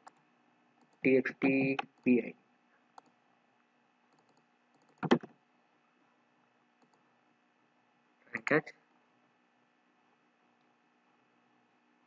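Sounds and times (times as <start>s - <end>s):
computer mouse click: 4.1s - 5.3s, 6.8s - 7.0s.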